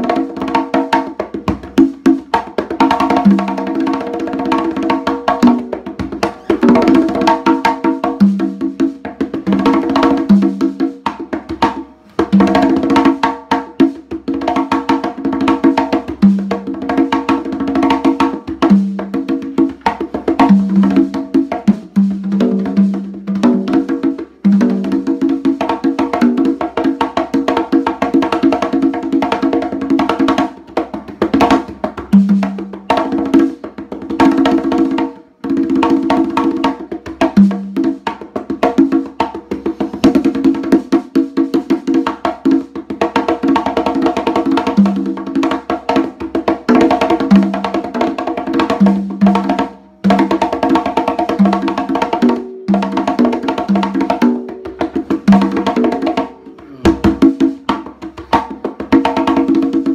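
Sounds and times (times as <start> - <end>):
conga drums played by hand: 0.0 - 59.9.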